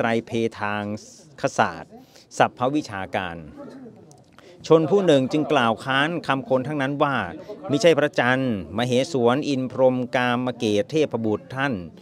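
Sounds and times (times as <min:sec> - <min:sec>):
man reading aloud: 0:04.6 - 0:12.0.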